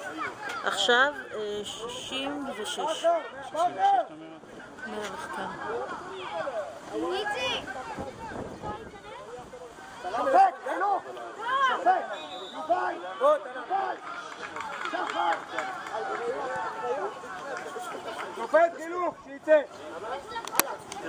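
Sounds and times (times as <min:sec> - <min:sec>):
voices shouting and calling out: 0:00.0 - 0:21.0.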